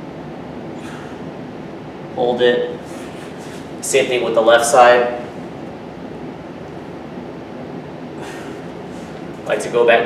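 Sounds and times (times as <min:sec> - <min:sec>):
room hiss and hum: 0:00.0 - 0:10.0
short breath: 0:00.8 - 0:01.3, 0:08.2 - 0:09.2.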